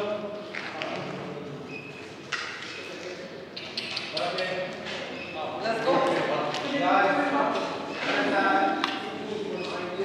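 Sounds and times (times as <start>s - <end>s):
echoing voices talking: 0.0s - 10.0s.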